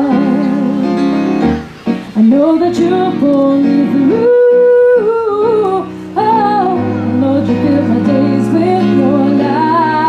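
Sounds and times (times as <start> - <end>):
woman singing: 0.0 - 1.2, 2.2 - 10.0
soft electric keyboard: 0.0 - 10.0.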